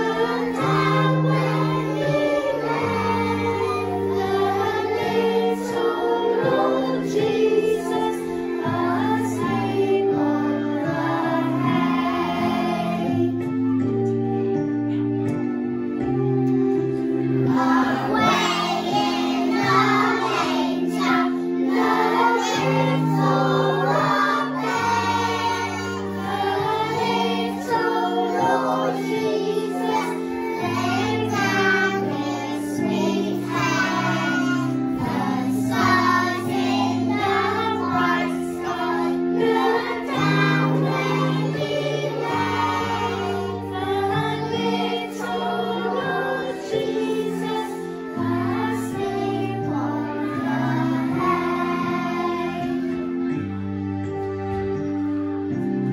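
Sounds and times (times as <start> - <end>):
children singing: 0.0 - 13.5, 17.2 - 53.3
instrumental accompaniment: 0.0 - 55.9.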